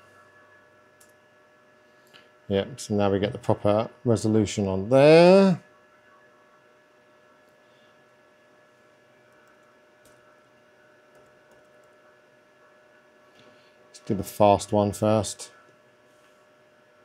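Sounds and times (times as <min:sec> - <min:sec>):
faint electrical hum: 0:00.0 - 0:17.0.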